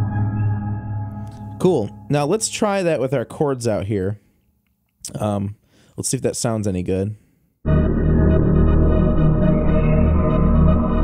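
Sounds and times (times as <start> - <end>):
synth pad chords: 0.0 - 2.5, 7.7 - 11.0.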